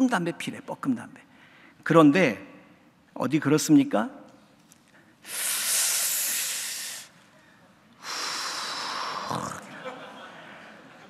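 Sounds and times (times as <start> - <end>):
man breathing breathy hisses: 5.2 - 7.2, 8.0 - 9.6.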